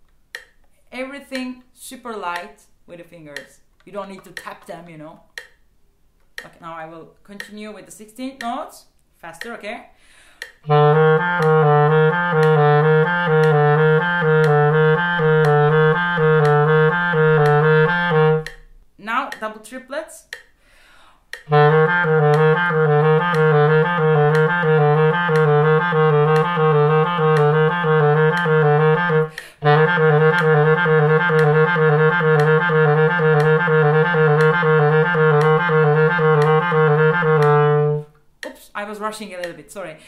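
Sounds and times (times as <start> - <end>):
metronome clicks: 0.0 - 2.6, 3.3 - 6.6, 7.4 - 7.7, 9.3 - 9.7, 10.4 - 20.6, 21.3 - 38.6, 39.4 - 39.6
clarinet playing fast low notes: 10.6 - 18.6, 21.5 - 38.1.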